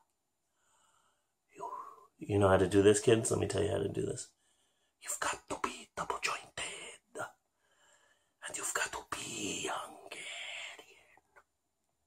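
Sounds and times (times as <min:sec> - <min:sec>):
man whispering: 0:01.5 - 0:04.4, 0:05.0 - 0:07.4, 0:08.4 - 0:11.2.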